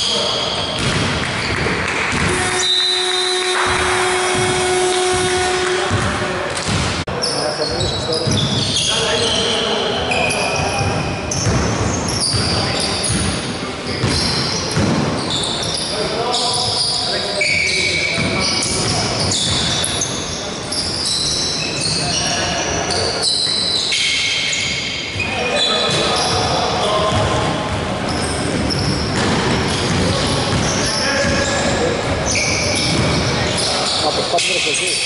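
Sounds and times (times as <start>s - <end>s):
players' voices echoing: 0.0s - 35.0s
sneaker squeaks: 0.0s - 35.0s
basketball bouncing: 0.8s - 7.0s, 10.6s - 13.4s, 14.0s - 15.2s, 27.1s - 31.8s, 32.5s - 33.3s.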